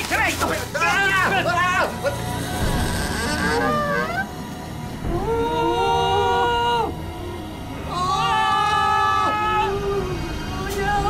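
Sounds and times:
men crying out excitedly: 0.5 - 4.4, 5.0 - 7.2, 7.8 - 11.0.

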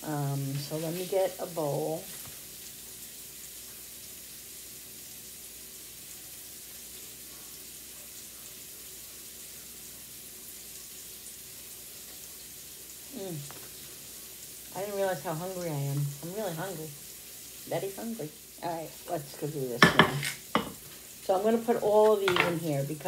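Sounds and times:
onions sizzling in a pan: 0.0 - 23.0.

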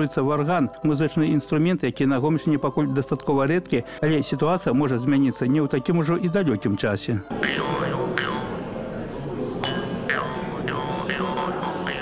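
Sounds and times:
jaw harp buzzing drone: 7.4 - 8.7, 9.8 - 12.0.

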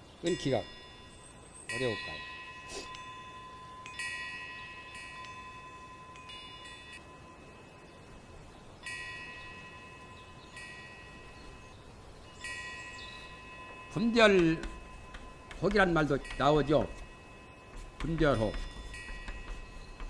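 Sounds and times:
faint steady high tone: 0.0 - 20.0
metallic chime tones: 0.2 - 20.0.

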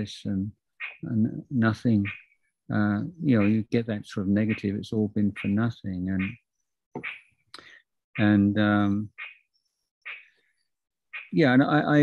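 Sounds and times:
man breathing faintly: 7.6 - 7.9.

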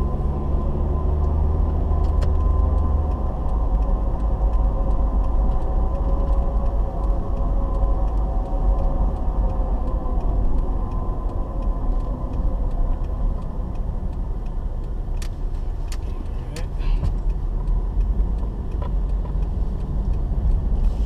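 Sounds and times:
car engine and road rumble: 0.0 - 21.0
sharp clicks: 2.0 - 20.9.

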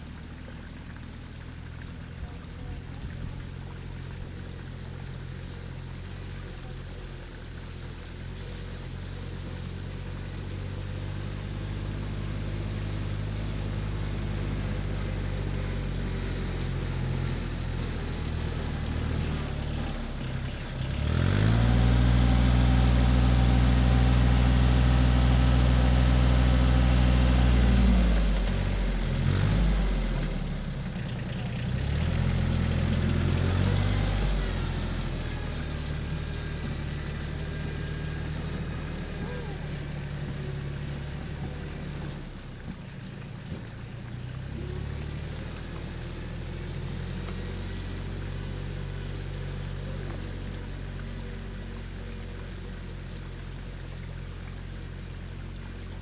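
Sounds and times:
tractor engine working hard: 0.0 - 56.0.

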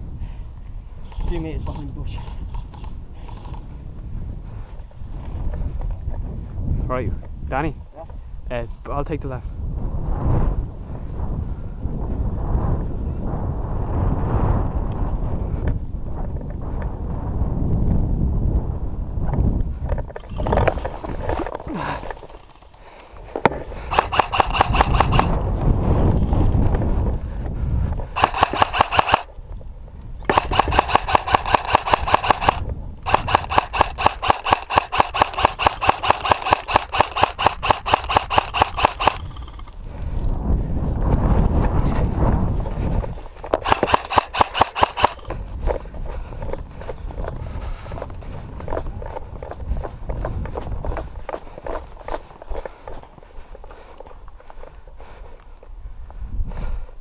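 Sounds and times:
airsoft rifle firing bursts: 23.9 - 25.3, 28.2 - 29.3, 30.3 - 39.6, 43.6 - 45.3.

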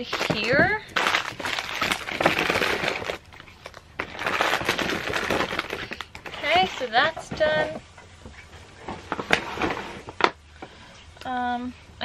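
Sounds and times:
tissue paper crinkling: 0.0 - 6.9.

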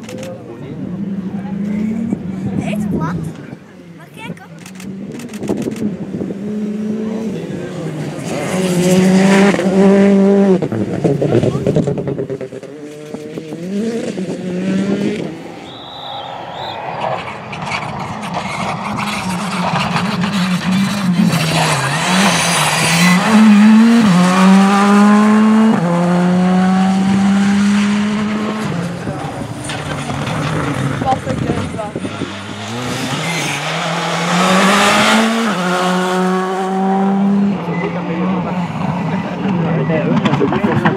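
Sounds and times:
rally cars racing past: 0.3 - 40.9
tyre squeal: 15.4 - 20.0.

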